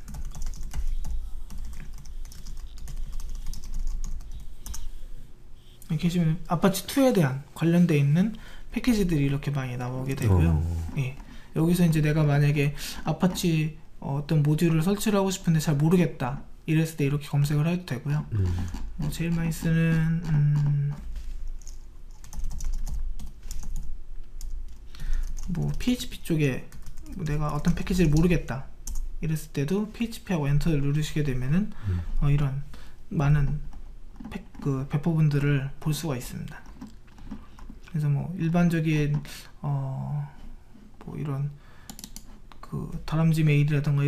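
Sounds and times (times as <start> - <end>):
low steady hum: 0.0 - 14.8, 15.5 - 23.0, 23.8 - 35.0
computer keyboard key clicks: 41.9 - 42.3.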